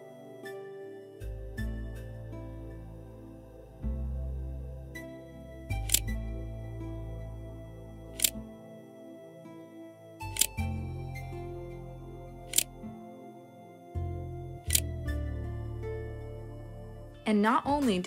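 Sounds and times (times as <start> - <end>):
calm background music: 0.0 - 18.0
sharp clicks: 5.9 - 6.1, 8.2 - 8.4, 10.3 - 10.6, 14.7 - 14.9.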